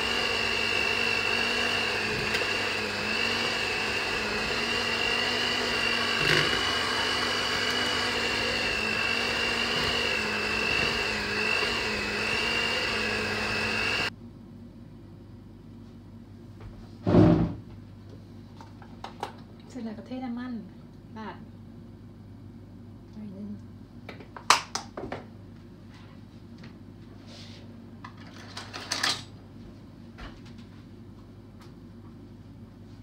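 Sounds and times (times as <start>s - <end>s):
electric hand mixer whining: 0.0s - 14.1s.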